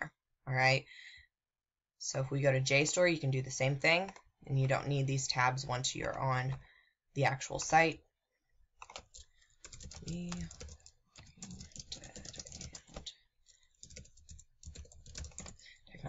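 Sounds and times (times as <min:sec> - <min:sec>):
computer keyboard typing: 0:08.8 - 0:16.0.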